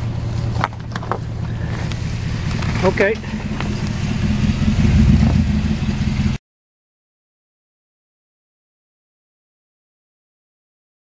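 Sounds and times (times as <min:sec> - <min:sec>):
pickup truck engine running: 0:00.0 - 0:06.4.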